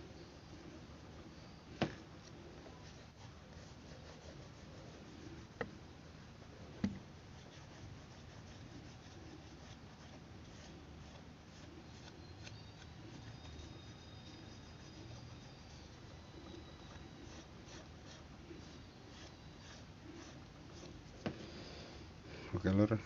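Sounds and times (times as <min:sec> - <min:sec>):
fingers rubbing paper: 0:02.2 - 0:05.6, 0:07.3 - 0:21.2.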